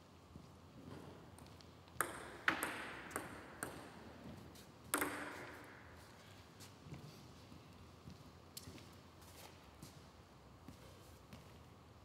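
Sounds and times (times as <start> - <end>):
table tennis ball bouncing: 1.9 - 4.0, 4.9 - 5.8.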